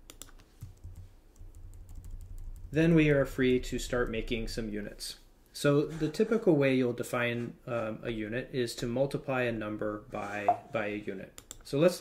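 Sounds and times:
keyboard typing: 0:00.0 - 0:02.7
faint low hum: 0:00.0 - 0:12.0.

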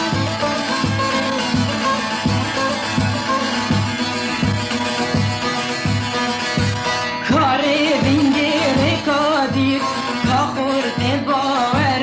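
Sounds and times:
band with steady low beat: 0:00.0 - 0:12.0
man singing: 0:07.3 - 0:12.0.

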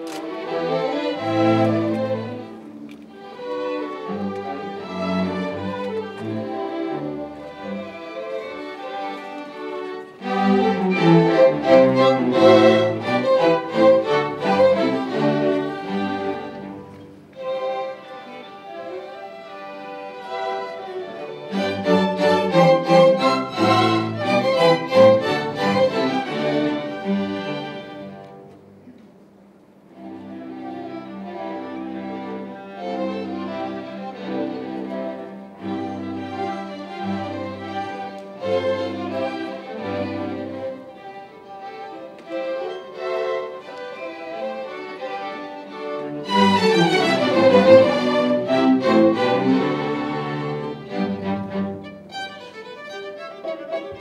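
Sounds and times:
string orchestra playing classical music: 0:00.0 - 0:54.0.

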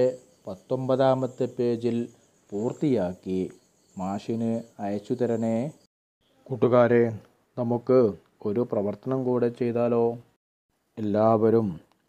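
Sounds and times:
man speaking: 0:00.0 - 0:05.8, 0:06.5 - 0:10.3, 0:11.0 - 0:11.8
faint high-pitched tone: 0:00.0 - 0:06.9.

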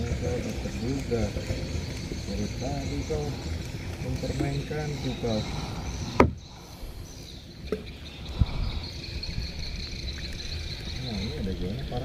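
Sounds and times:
insect chirring: 0:00.0 - 0:12.0.

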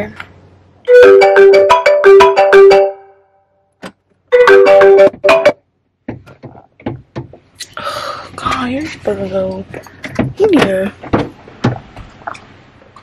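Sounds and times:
phone ringtone melody: 0:00.9 - 0:03.4, 0:04.3 - 0:05.6.

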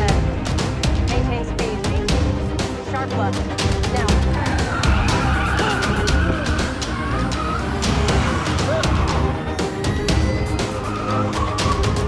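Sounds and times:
car tyres screeching: 0:04.2 - 0:12.0.

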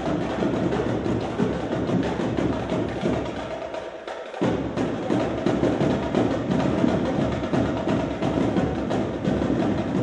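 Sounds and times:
marching drumline cadence: 0:00.0 - 0:10.0.

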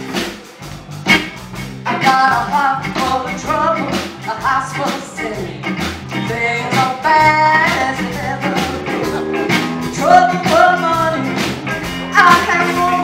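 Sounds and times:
live rock band playing: 0:00.0 - 0:13.0
woman singing lead: 0:01.9 - 0:13.0.

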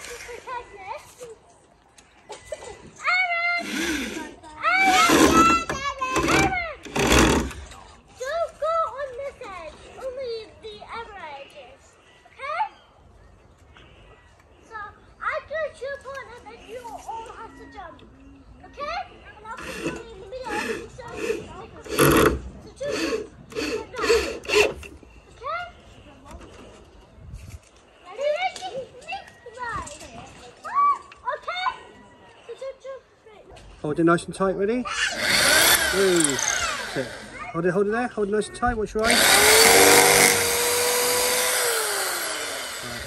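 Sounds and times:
children playing and calling out: 0:00.0 - 0:33.8, 0:34.7 - 0:37.6
loud sharp sounds: 0:39.0 - 0:43.0.

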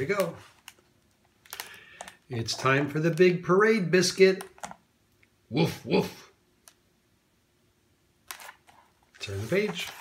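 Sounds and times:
paper page rustle: 0:08.3 - 0:10.0.

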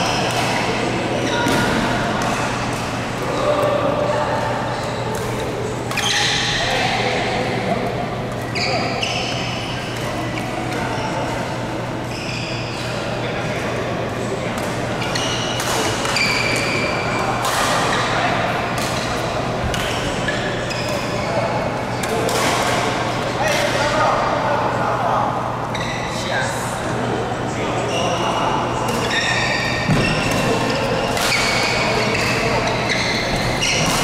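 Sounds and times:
shoes squeaking on court: 0:08.2 - 0:11.4, 0:29.0 - 0:34.0.

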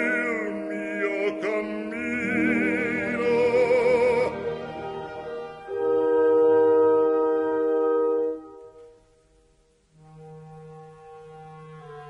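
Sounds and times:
low brass chord: 0:03.9 - 0:10.9.

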